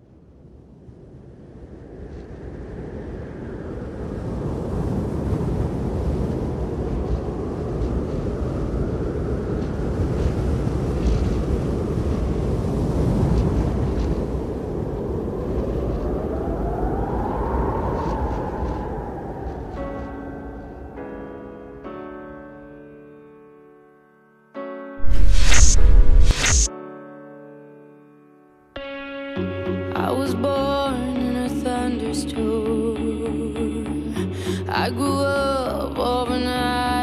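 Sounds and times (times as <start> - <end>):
low wind-like rumble: 0.0 - 21.2, 25.0 - 26.7
faint rising whine: 25.0 - 26.7.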